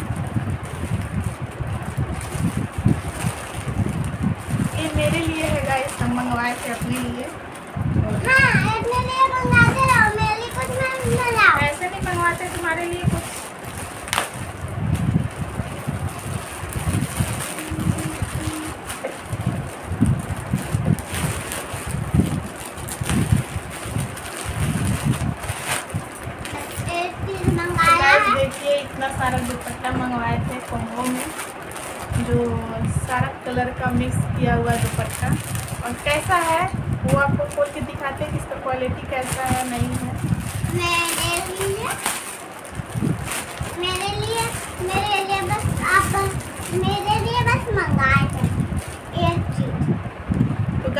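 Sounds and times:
plastic bag rustling and tearing: 0.0 - 33.0, 34.5 - 49.6
plastic packaging crinkling: 0.0 - 33.1, 33.8 - 49.5
wind buffeting microphone: 0.0 - 50.9.

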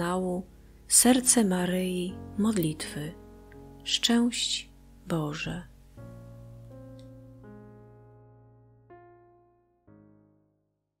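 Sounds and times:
soft piano chords: 0.0 - 11.0.

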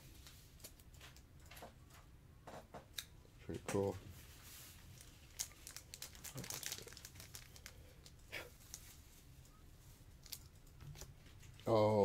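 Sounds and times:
foil and plastic crinkling: 4.6 - 9.0.

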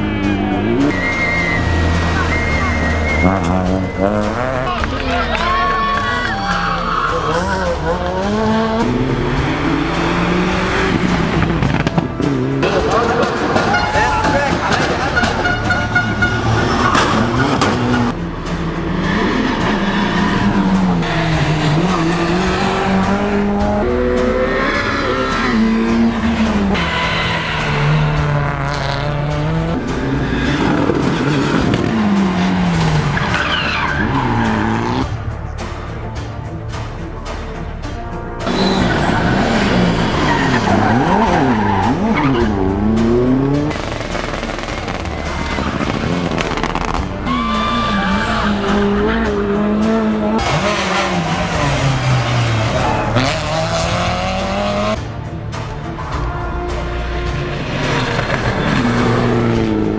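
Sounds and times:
music: 0.0 - 59.9
rally car engines revving: 0.0 - 59.9.

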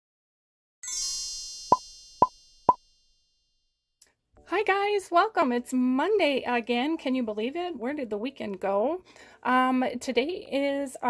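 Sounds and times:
high sparkling chime: 0.8 - 2.2.

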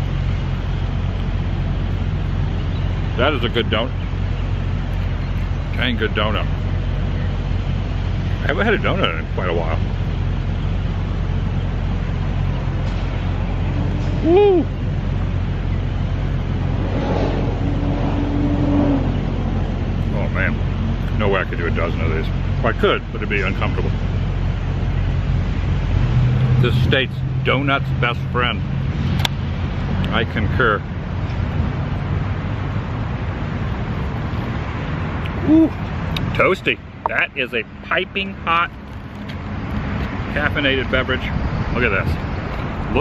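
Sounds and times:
low rumble of road traffic: 0.0 - 43.0
vehicle engine rising: 0.0 - 43.0
man saying ooh: 14.2 - 14.8, 35.4 - 35.8.

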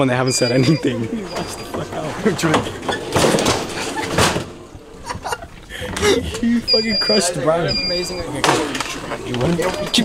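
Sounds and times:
young men laughing: 0.4 - 2.9, 3.6 - 7.0.

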